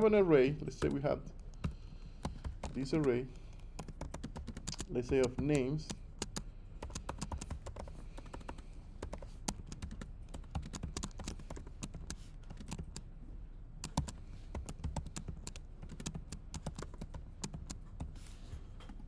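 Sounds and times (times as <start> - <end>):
laptop keyboard typing: 0.6 - 13.1, 13.8 - 18.3.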